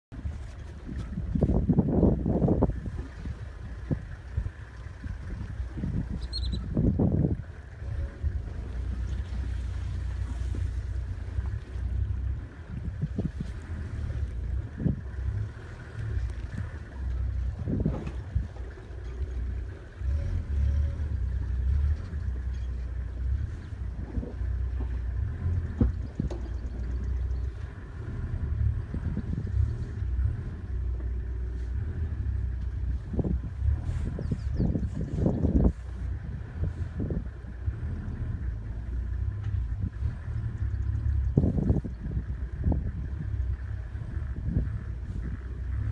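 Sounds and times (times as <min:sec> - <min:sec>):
vehicle low rumble: 0:00.0 - 0:45.9
wind on microphone: 0:00.1 - 0:45.9.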